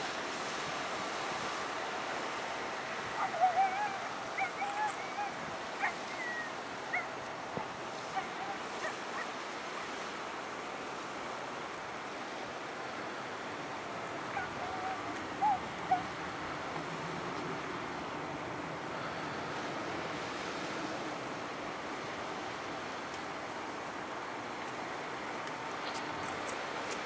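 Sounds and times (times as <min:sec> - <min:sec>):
outdoor ambient noise: 0:00.0 - 0:27.0.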